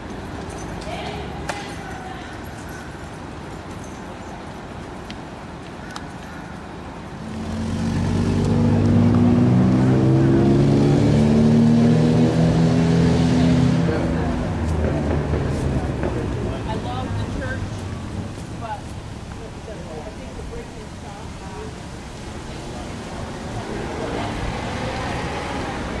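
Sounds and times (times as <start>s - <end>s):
vehicle engine passing: 7.2s - 20.9s, 22.2s - 26.0s.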